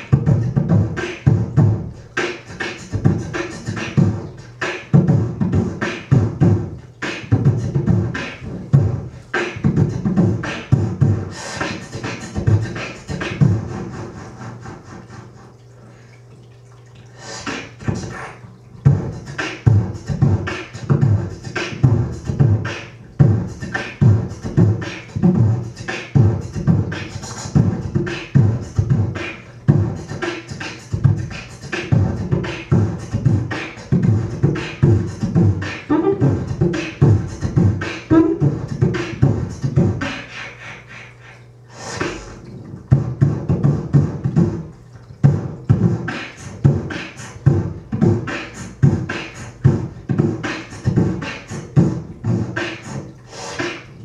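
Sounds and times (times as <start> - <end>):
person beatboxing: 0.0 - 15.6, 17.1 - 54.0.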